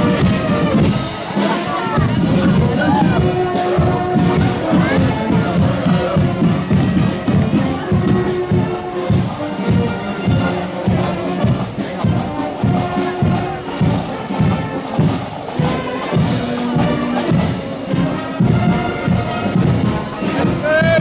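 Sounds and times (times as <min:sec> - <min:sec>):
marching band playing: 0:00.0 - 0:21.0
steady drum beat: 0:00.0 - 0:21.0.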